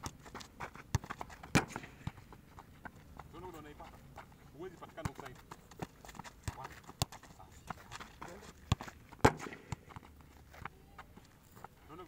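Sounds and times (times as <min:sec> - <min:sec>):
feet on hard dirt: 0:00.0 - 0:12.0
football being kicked: 0:00.9 - 0:02.4, 0:08.6 - 0:10.1.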